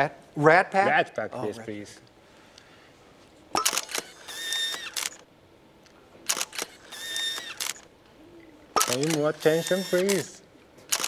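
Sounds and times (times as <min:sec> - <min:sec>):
camera motorised whir: 0:03.6 - 0:05.3, 0:06.2 - 0:07.9, 0:08.8 - 0:11.0
camera shutter clicks: 0:03.6 - 0:05.3, 0:06.3 - 0:07.9, 0:08.8 - 0:10.3.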